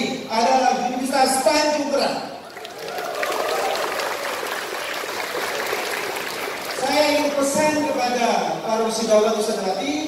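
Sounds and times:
audience applauding: 2.4 - 7.5.

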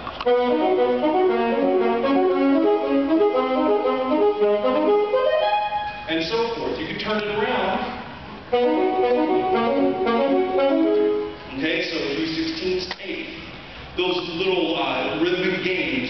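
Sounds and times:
saxophone playing short notes: 0.2 - 6.1, 8.5 - 11.5.

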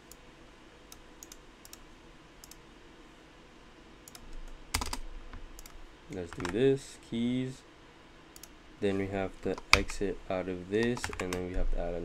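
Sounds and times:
computer keyboard clicks: 4.1 - 5.0, 6.3 - 6.6, 10.8 - 11.5.

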